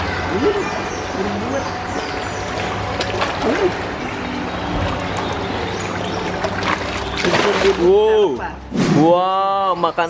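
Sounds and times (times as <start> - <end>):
water splashing and churning: 0.0 - 9.1.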